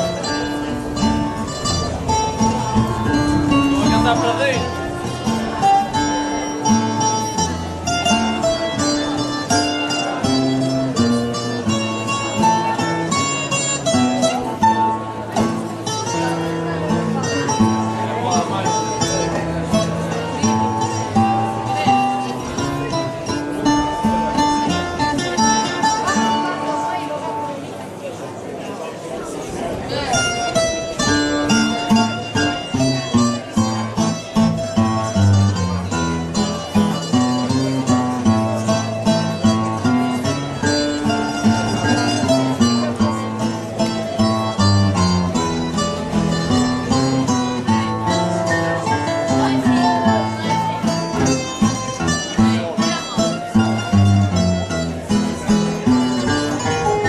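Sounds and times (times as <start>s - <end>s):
plucked acoustic guitars: 0.0s - 57.0s.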